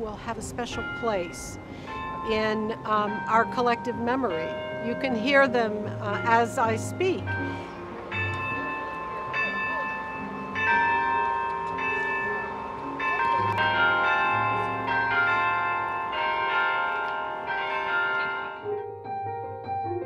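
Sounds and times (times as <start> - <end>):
tower bells ringing: 0.0 - 19.0.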